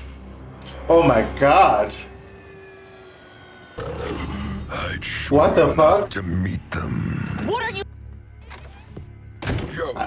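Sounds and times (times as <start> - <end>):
faint drone of sliding tones: 0.0 - 4.7.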